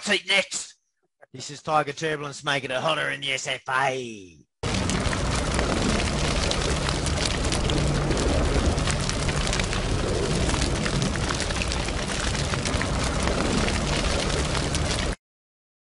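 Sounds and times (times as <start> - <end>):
fire crackles: 4.6 - 15.2
flames burning with rushing noise: 4.6 - 15.2
low rumble: 4.6 - 15.2.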